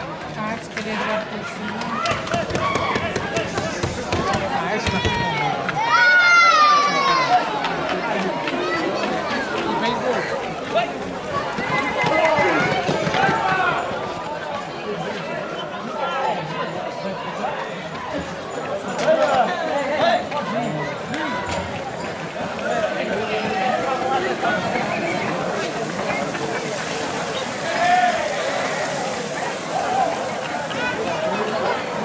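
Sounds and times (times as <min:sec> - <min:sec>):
people shouting and talking: 0:00.0 - 0:32.0.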